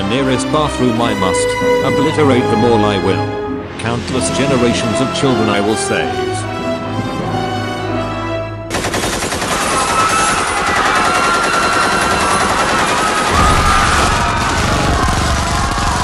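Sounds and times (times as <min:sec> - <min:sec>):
music: 0:00.0 - 0:09.2
rapid automatic gunfire: 0:08.7 - 0:16.0.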